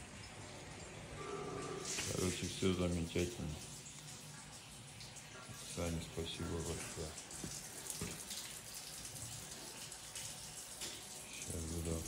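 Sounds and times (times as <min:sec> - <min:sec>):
running water hiss: 0:00.0 - 0:12.0.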